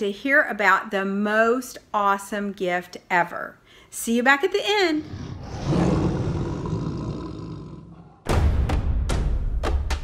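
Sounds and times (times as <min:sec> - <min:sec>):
lion roaring: 0:05.0 - 0:08.3
drum-heavy music: 0:08.3 - 0:10.0.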